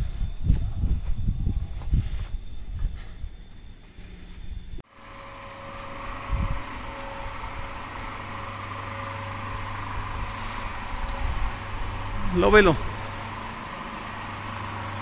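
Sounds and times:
hoist motors humming: 2.7s - 15.0s.

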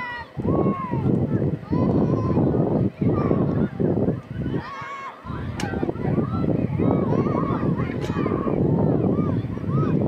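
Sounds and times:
distant voices calling out: 0.0s - 10.0s
wind buffeting microphone: 0.0s - 10.0s.

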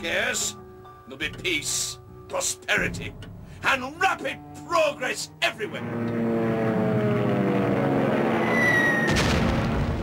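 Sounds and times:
propeller plane engines droning: 2.8s - 10.0s
high whistle: 8.4s - 9.2s.

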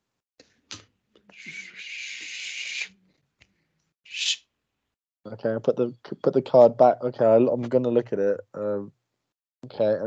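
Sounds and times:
person hissing breathily: 1.3s - 2.9s.

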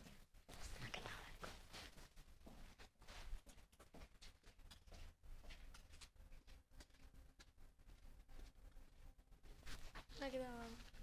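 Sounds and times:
clothing rustling against phone: 8.0s - 11.0s.

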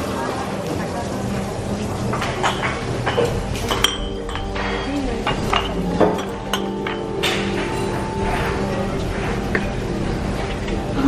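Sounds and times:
faint murmur of voices: 0.0s - 11.0s
dishes and cutlery clinking: 1.4s - 11.0s
background music: 2.4s - 11.0s.

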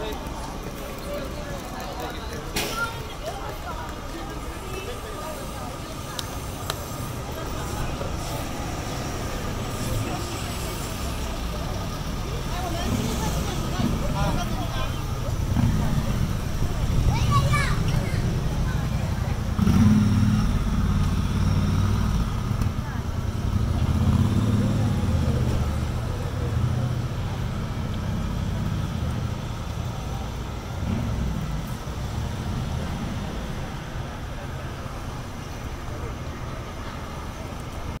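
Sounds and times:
people's voices: 0.0s - 38.0s
traffic rumble: 0.0s - 38.0s.

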